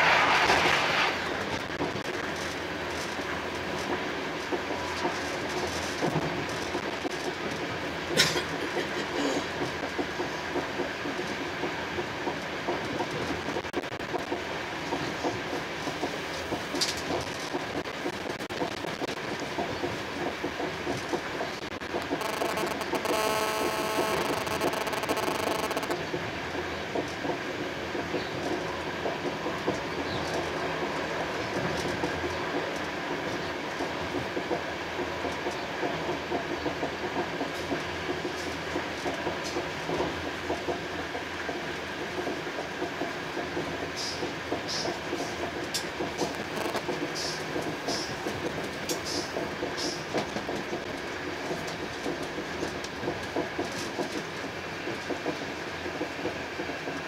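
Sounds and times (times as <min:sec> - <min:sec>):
train rumbling: 0:00.0 - 0:57.0
wheels ticking over track: 0:01.4 - 0:57.0
multi-tone whine: 0:22.0 - 0:26.0, 0:46.3 - 0:46.9.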